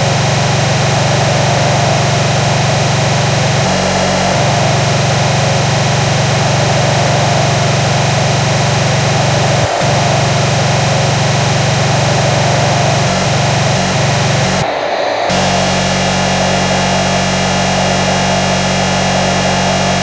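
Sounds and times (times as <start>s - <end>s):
distorted fast electronic music: 0.0s - 14.6s, 15.3s - 20.0s.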